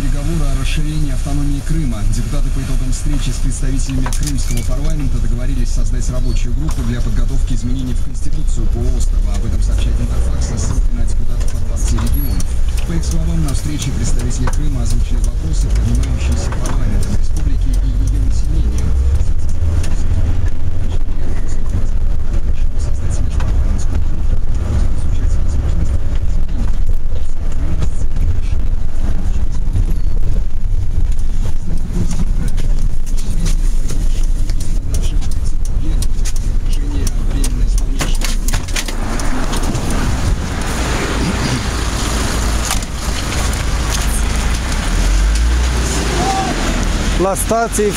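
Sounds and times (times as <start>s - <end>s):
engine and road rumble: 0.0s - 47.9s
street traffic: 0.0s - 47.9s.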